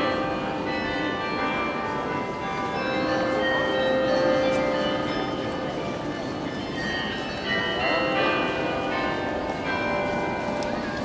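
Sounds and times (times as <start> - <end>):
church bells pealing: 0.0 - 11.0
crowd voices: 0.0 - 11.0.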